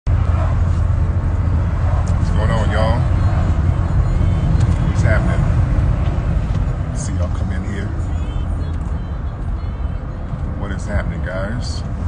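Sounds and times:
car cabin rumble: 0.1s - 12.0s
man talking: 2.2s - 3.1s, 4.8s - 5.6s, 6.9s - 8.1s, 10.5s - 11.9s.

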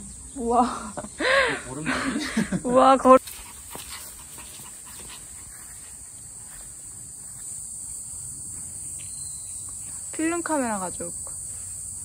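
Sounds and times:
woman exclaiming and laughing: 0.4s - 1.2s, 2.4s - 3.2s
high-pitched insect chirring: 2.4s - 12.0s.

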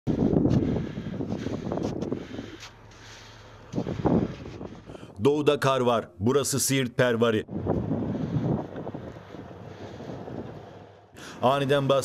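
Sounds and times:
vehicle engine hum: 0.1s - 5.2s, 7.6s - 11.4s
wind buffeting microphone: 0.1s - 5.2s, 7.5s - 11.9s.

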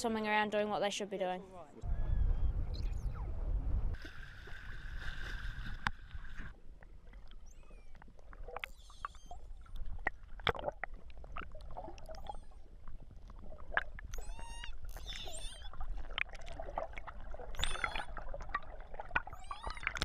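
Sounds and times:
sharp underwater clicks: 5.7s - 20.0s
whale whistle calls: 7.4s - 8.0s, 8.7s - 9.6s, 12.2s - 12.7s, 14.1s - 15.8s, 17.6s - 18.2s, 19.3s - 20.0s.

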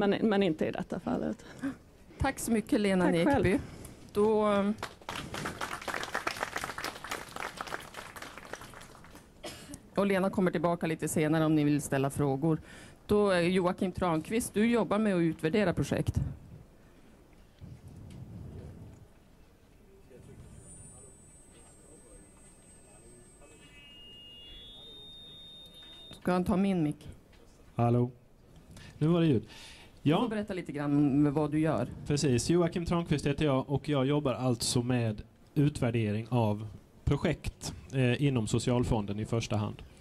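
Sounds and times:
audience applauding: 4.8s - 9.4s
high-pitched electronic whine: 20.2s - 26.3s.

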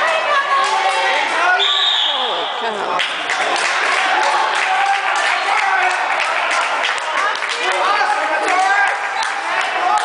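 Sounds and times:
referee's whistle: 1.6s - 2.6s
spectators shouting: 3.4s - 10.0s.

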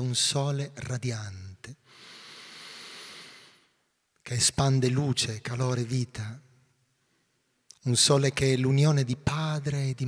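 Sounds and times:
long breath close up: 1.8s - 3.8s.

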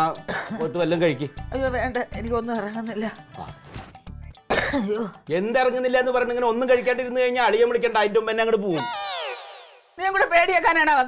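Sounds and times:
woman coughing: 0.3s - 0.6s, 4.5s - 5.2s.

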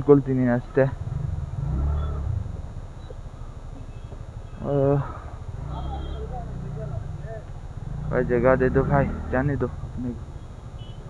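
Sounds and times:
vehicle engine rumble: 0.0s - 11.0s.

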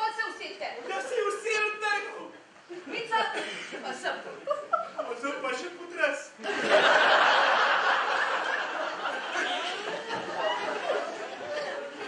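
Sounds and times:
audience laughing loudly: 6.4s - 12.0s.

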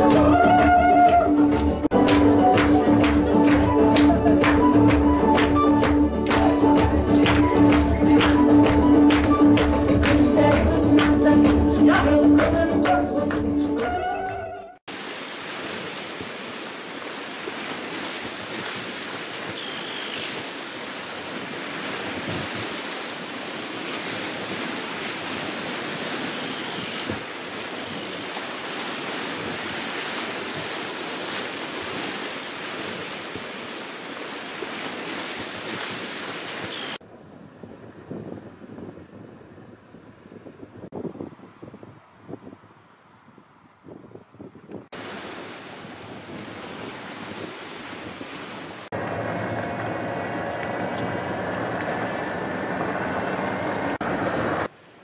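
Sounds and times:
wind: 0.0s - 55.0s
small waves washing onto shore: 14.9s - 44.2s, 44.8s - 55.0s
wind gusts buffeting microphone: 21.2s - 34.2s, 34.9s - 54.7s.

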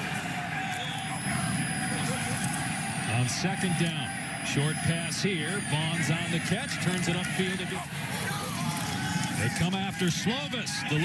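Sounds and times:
faint voices: 0.0s - 11.0s
stadium crowd ambience: 0.0s - 11.0s.

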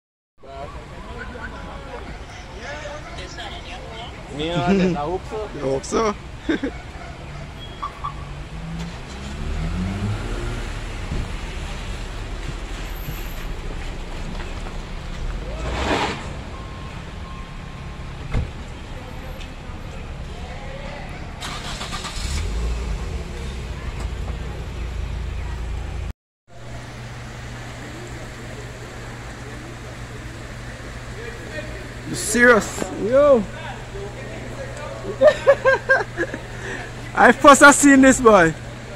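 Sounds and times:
motor vehicle passing: 6.7s - 17.2s.

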